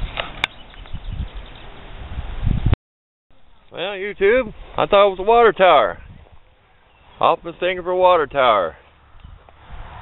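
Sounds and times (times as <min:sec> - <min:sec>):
wind rumbling on microphone: 0:00.0 - 0:02.8, 0:04.1 - 0:06.7, 0:09.0 - 0:10.0.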